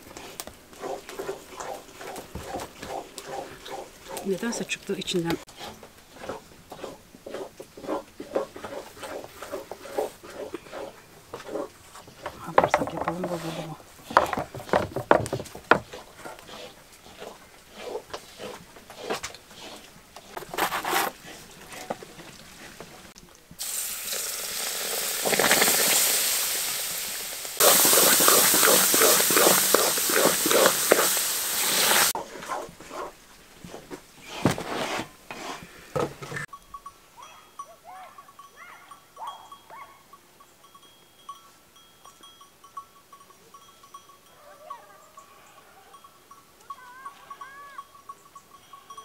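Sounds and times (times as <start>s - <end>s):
wooden spoon scraping a pan: 0.0s - 23.2s, 27.6s - 36.5s
sizzling in a pan: 23.6s - 32.2s.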